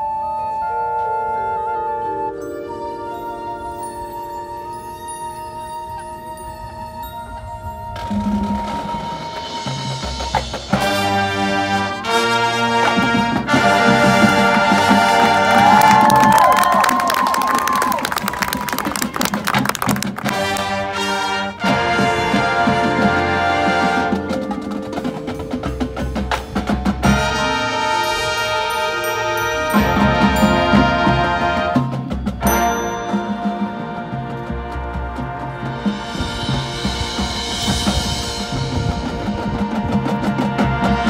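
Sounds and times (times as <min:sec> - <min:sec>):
marching band playing: 0:00.0 - 0:41.0
full-band hits: 0:19.5 - 0:41.0.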